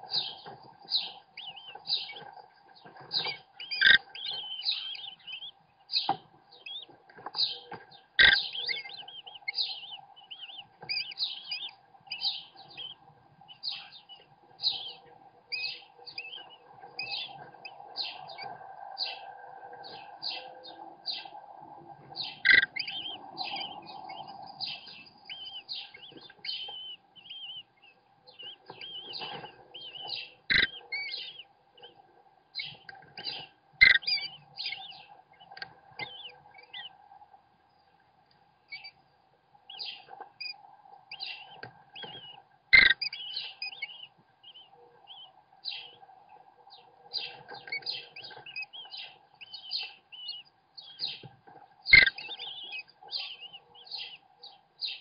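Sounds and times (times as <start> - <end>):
nestlings chirping: 0.0 - 38.0, 38.6 - 55.0.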